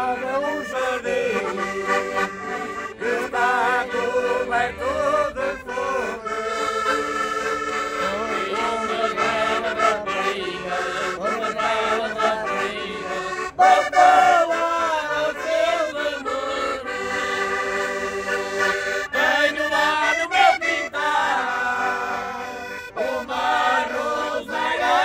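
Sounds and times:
button accordions playing folk music: 0:00.0 - 0:25.0
voices singing along: 0:00.0 - 0:25.0.

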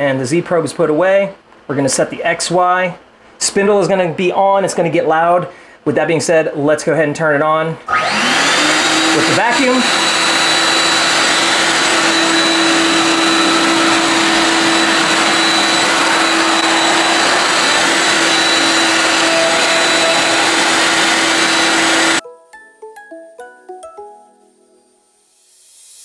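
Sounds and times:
router spindle and vacuum running: 0:07.9 - 0:22.2.

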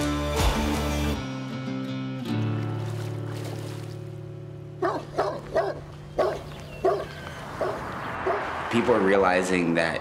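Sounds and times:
dog barking deeply: 0:04.8 - 0:08.6.

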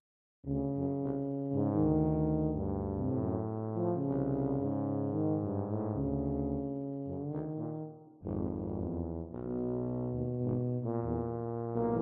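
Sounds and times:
tubas playing low notes: 0:00.5 - 0:12.0.

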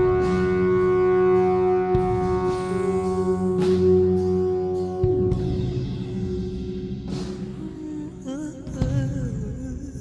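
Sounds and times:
rock band holding a chord: 0:00.0 - 0:07.9.

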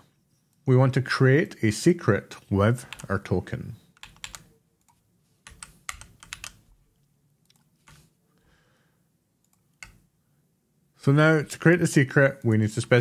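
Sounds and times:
computer keyboard keystrokes: 0:02.9 - 0:03.1, 0:03.9 - 0:06.6, 0:09.4 - 0:10.0.

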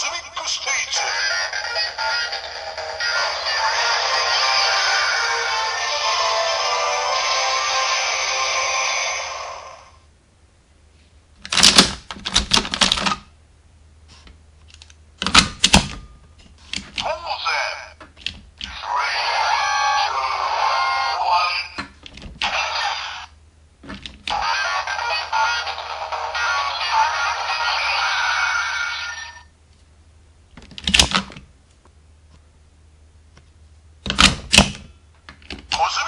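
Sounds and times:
toy belt electronic tune: 0:01.0 - 0:09.6, 0:24.3 - 0:29.5.

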